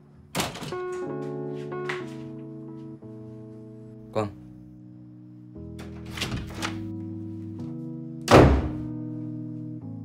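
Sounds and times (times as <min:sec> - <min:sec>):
soft background music: 0:00.0 - 0:10.0
wooden door shutting with thud: 0:05.8 - 0:06.9, 0:08.3 - 0:08.9.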